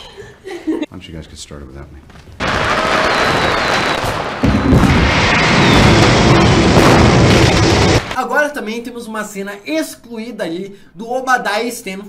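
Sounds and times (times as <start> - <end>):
deep firework booms: 2.4 - 8.2
fireworks crackling: 2.4 - 8.2.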